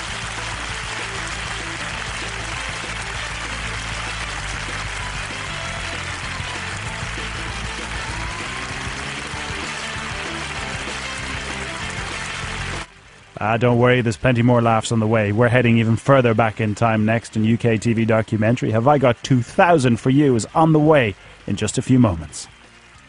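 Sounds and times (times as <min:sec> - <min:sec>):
closing theme music: 0:00.0 - 0:23.0
studio audience applause: 0:00.0 - 0:23.0.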